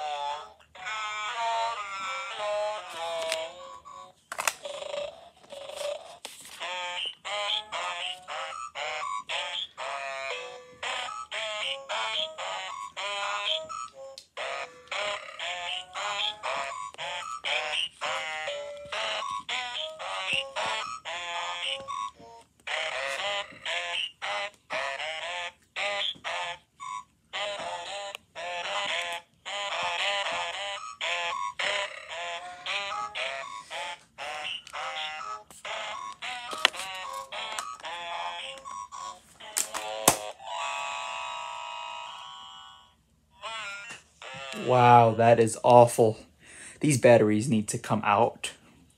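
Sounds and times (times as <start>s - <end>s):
electronic toy tune through small speaker: 0.0s - 44.7s.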